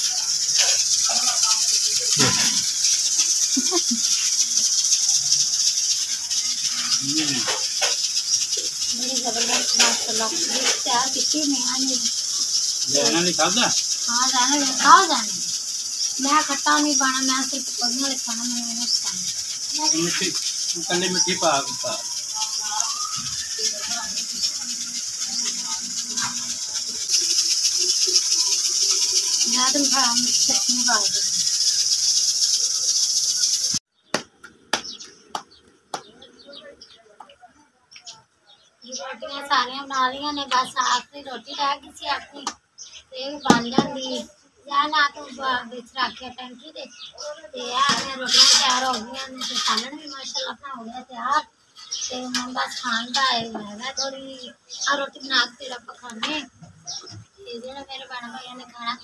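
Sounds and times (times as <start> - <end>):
faint murmured voices: 0.0 - 31.7
insects buzzing: 0.0 - 59.0.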